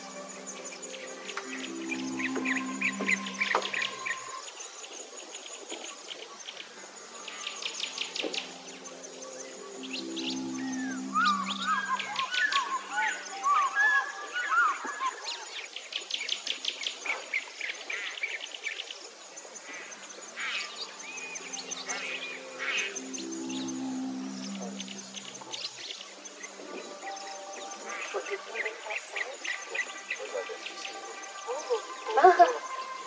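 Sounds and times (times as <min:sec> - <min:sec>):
soft background music: 0:00.0 - 0:16.8, 0:19.2 - 0:33.0
birds chirping and trilling: 0:00.0 - 0:33.0.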